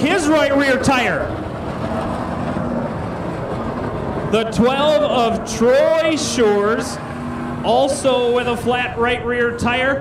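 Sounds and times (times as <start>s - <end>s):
race car engines droning: 0.0s - 10.0s.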